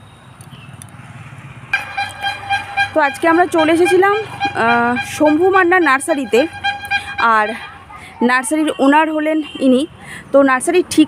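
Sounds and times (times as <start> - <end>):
faint outdoor background noise: 0.0 - 11.0
steady held tone: 1.8 - 8.0.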